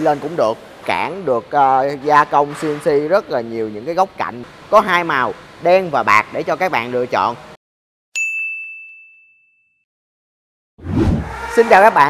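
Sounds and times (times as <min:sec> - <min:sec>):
bell-like ding: 0:08.2 - 0:09.9.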